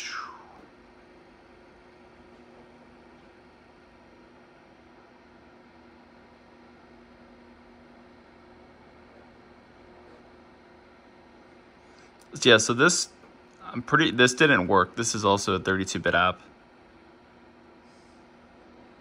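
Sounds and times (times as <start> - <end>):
faint steady hum: 0.0 - 19.0.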